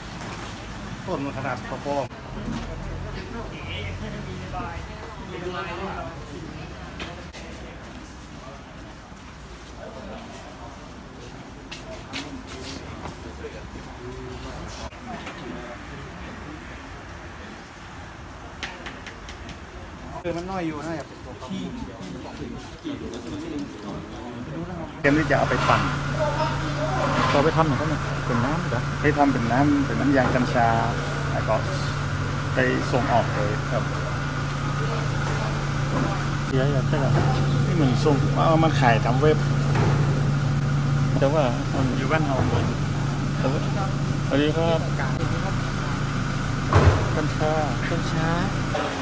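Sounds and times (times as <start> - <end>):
faint voices talking: 1.1 - 40.4
man speaking: 20.2 - 33.9
low machine hum: 22.2 - 49.0
sharp thump: 39.7 - 40.2, 46.7 - 47.4.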